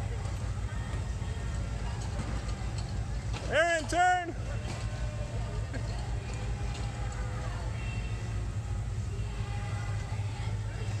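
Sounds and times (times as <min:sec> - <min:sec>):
go-kart engines droning: 0:00.0 - 0:11.0.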